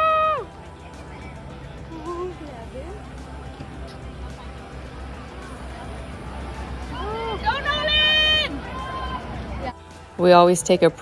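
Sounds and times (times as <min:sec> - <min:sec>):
spectator shouting: 0:00.0 - 0:00.5, 0:07.0 - 0:09.3
outdoor crowd murmur: 0:00.0 - 0:11.0.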